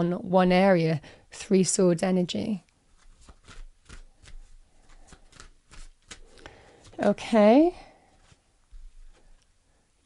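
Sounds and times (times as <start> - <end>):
cards being shuffled by hand: 2.9 - 7.2, 8.0 - 9.4.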